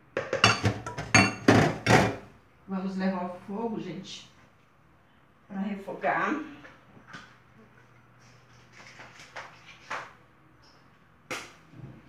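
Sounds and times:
faint steady hum: 0:00.1 - 0:08.7
kitchen handling clicks and knocks: 0:00.2 - 0:02.3.

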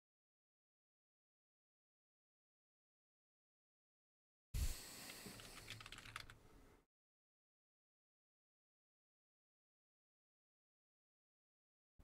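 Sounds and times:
computer keyboard typing: 0:05.3 - 0:06.4.

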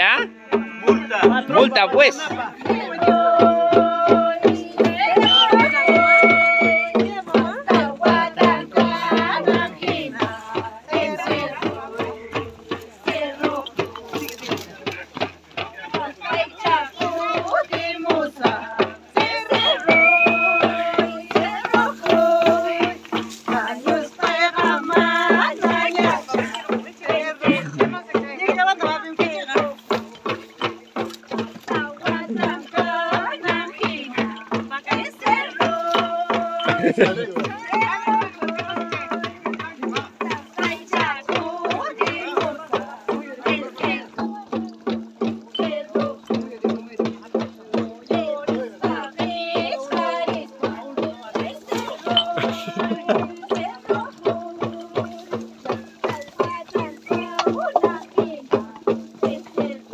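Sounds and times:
hand drums beaten quickly: 0:00.0 - 0:59.9.

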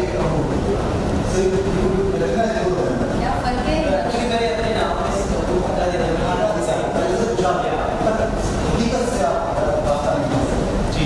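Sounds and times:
man talking: 0:00.0 - 0:03.1, 0:03.9 - 0:11.0.

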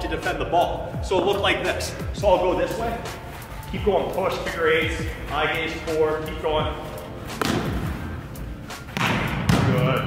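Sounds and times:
volleyball smacked by hand: 0:07.4 - 0:07.8, 0:08.9 - 0:09.7.

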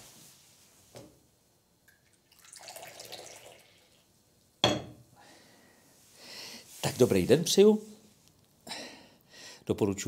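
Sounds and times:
tea pouring into cup: 0:01.9 - 0:04.1.

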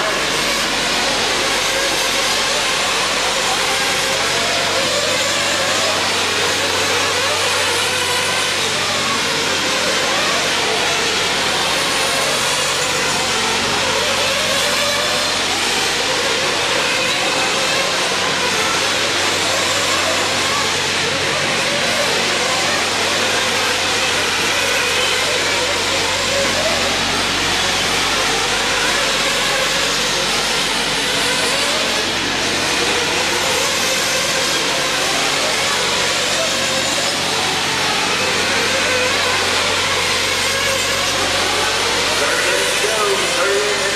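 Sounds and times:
rc car motors and tyres: 0:00.0 - 0:43.9.

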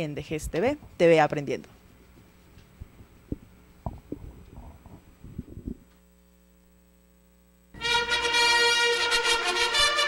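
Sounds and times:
steady mains hum: 0:00.0 - 0:10.0
microphone handling thumps: 0:02.0 - 0:06.0.

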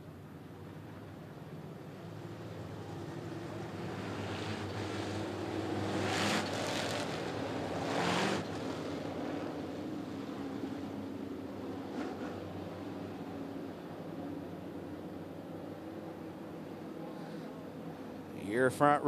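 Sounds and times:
race car engines humming: 0:00.0 - 0:19.0.

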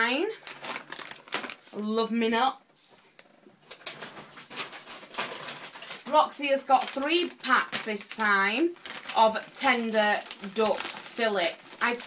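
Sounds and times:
plastic bags rustling and crinkling: 0:00.2 - 0:01.9, 0:03.2 - 0:12.0.

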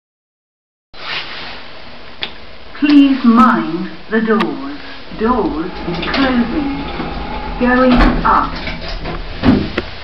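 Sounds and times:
room tone hiss: 0:01.0 - 0:10.0.

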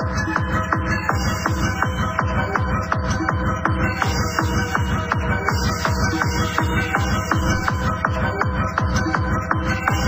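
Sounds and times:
steady kick drum: 0:00.0 - 0:10.0
techno music: 0:00.0 - 0:10.0.

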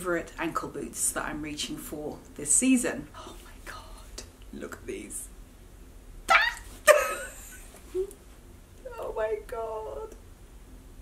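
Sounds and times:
woman squealing: 0:06.3 - 0:07.2.

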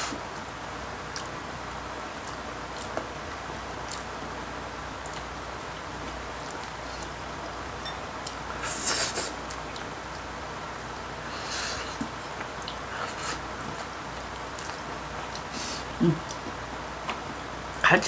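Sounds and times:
faint background hiss: 0:00.0 - 0:18.0.

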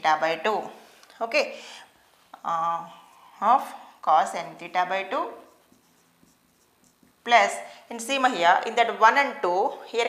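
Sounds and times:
marker pen writing on whiteboard: 0:02.2 - 0:08.8.

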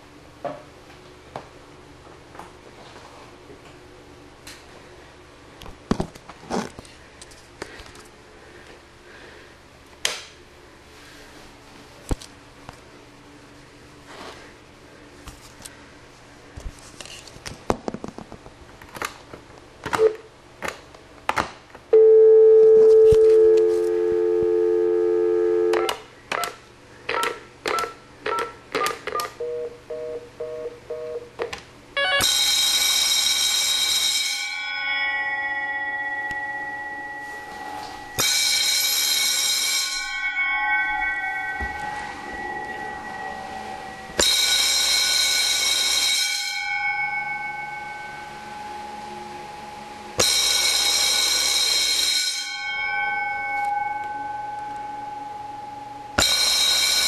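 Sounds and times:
electric fire bells ringing: 0:22.0 - 0:26.0, 0:32.0 - 0:57.0
telephone dial tone: 0:22.0 - 0:26.0.

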